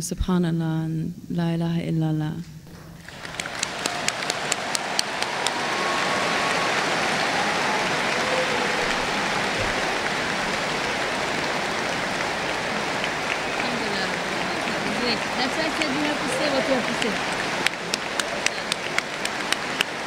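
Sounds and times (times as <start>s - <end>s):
audience applauding: 3.0s - 20.0s.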